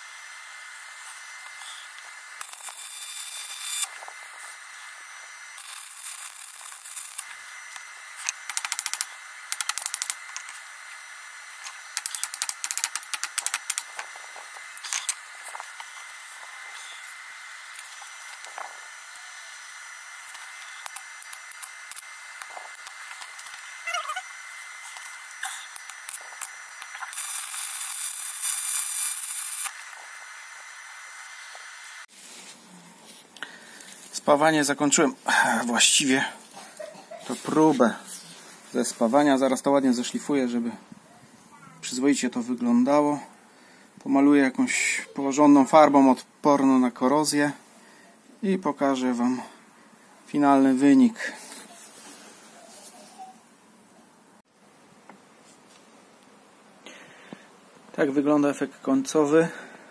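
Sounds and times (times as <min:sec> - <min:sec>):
crackling welding arc: 0:00.0 - 0:32.1
sharp crackles and ticks: 0:05.6 - 0:10.6, 0:11.6 - 0:14.1.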